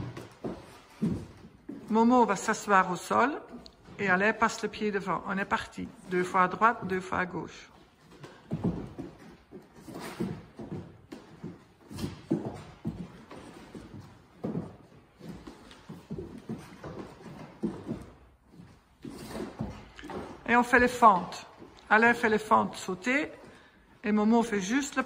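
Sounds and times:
hands and feet thudding on wood floor: 0.0s - 2.4s, 3.8s - 22.5s.

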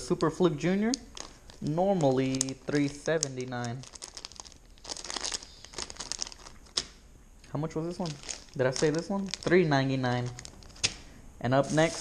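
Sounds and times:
plastic packages crinkling: 0.0s - 12.0s.

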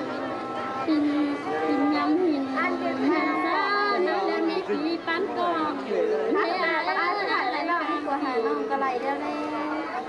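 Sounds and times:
babble of voices: 0.0s - 10.0s.

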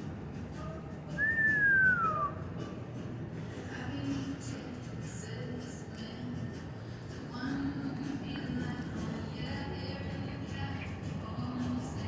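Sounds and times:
faint background music: 0.0s - 12.0s.

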